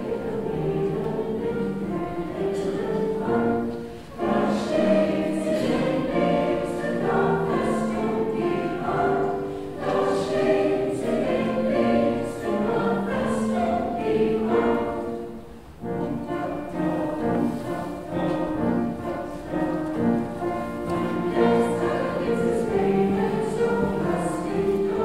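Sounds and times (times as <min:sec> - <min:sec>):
mixed choir singing: 0:00.0 - 0:25.0.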